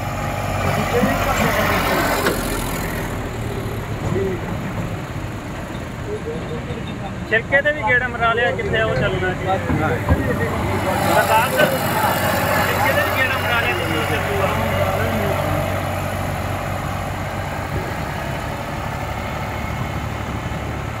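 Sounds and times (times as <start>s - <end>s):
indistinct voices: 0.0s - 20.0s
tractor diesel engine running: 0.0s - 21.0s.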